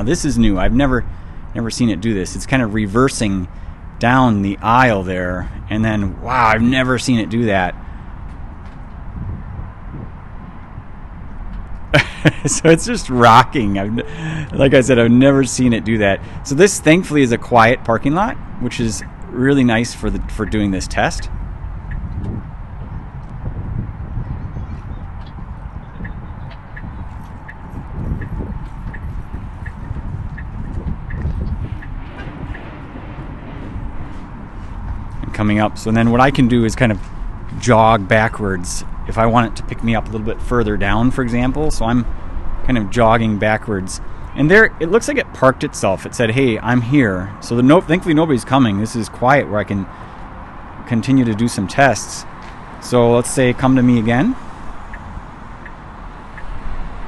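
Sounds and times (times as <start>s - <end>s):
wind rumble on microphone: 0.0s - 57.0s
low rumble: 18.2s - 43.3s.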